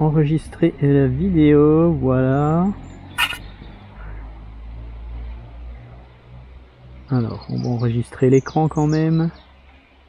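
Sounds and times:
sharp controller click: 3.2s - 3.4s.

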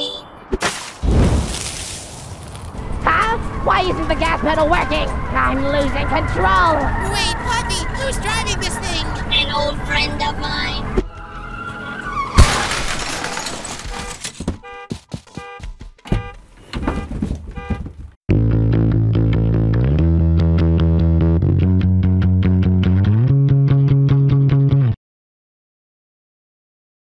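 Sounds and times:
cartoon car crash smash: 0.6s - 2.4s, 12.4s - 14.4s
theme music: 2.8s - 12.1s.

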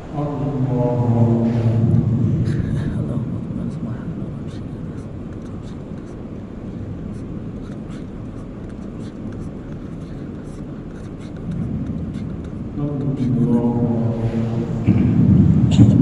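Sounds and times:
muffled low rumble: 0.0s - 16.0s.

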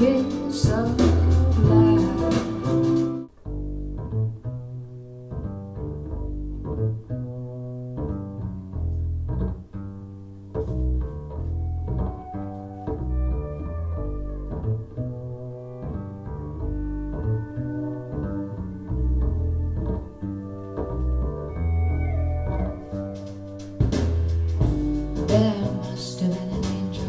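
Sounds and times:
deep bass line: 0.0s - 27.0s.

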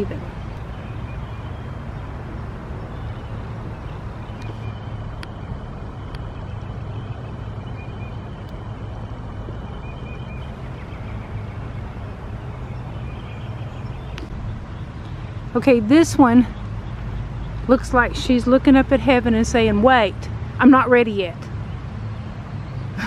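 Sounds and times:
distant road traffic rumble: 0.0s - 23.0s.

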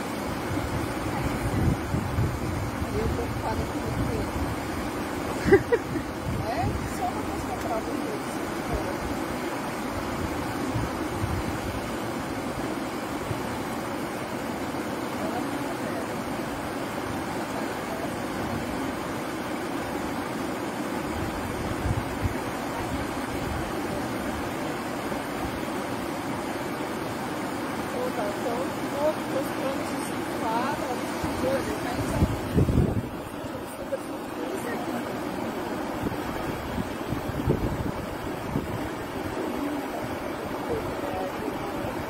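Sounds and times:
river water rushing: 0.0s - 42.0s.

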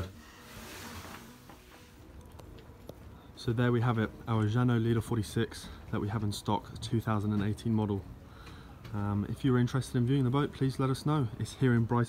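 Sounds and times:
soft rustle: 0.0s - 3.4s.

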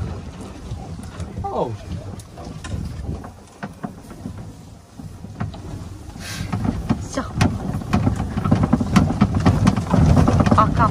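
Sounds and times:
cart driving over grass: 0.0s - 10.9s
knocks and rattles: 0.0s - 10.9s.

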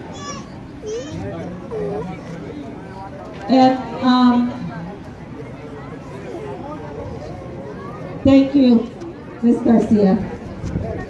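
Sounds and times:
high-pitched child voices: 0.0s - 1.3s
murmur of children's voices: 0.0s - 11.0s.

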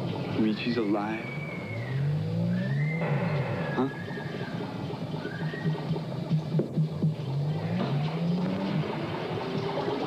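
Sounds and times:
low wavering drone: 1.2s - 6.2s.

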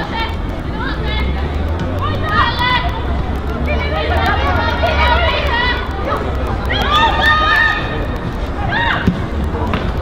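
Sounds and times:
voices shouting: 0.0s - 9.5s.

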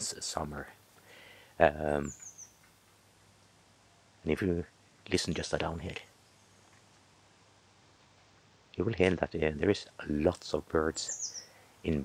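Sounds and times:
songbird call: 1.9s - 2.8s, 11.0s - 12.0s.

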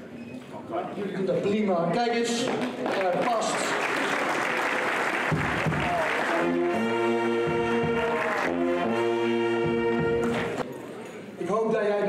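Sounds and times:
applause: 2.4s - 8.7s
low drum beats: 5.3s - 6.1s, 7.3s - 9.0s
brass band playing: 5.3s - 10.6s.

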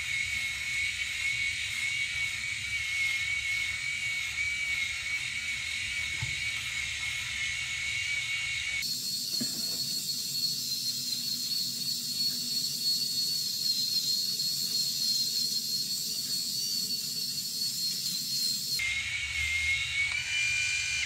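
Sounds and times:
rotary shaver motor whine: 0.0s - 21.0s.

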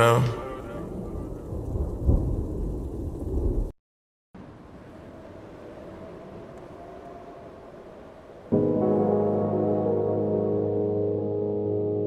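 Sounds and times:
low rumbling noise: 0.0s - 3.7s.

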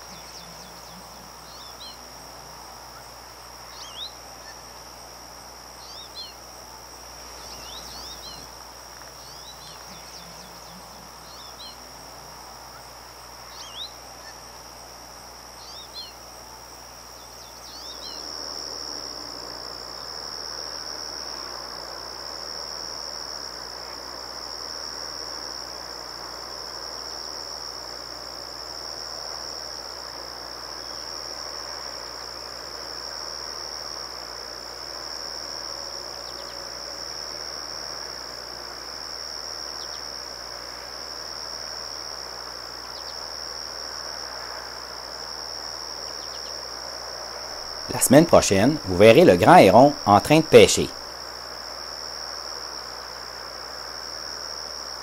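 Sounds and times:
crickets trilling: 0.0s - 55.0s.

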